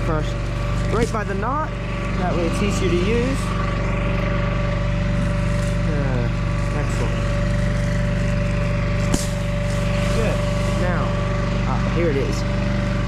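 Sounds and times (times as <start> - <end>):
tractor engine idling: 0.0 - 13.0.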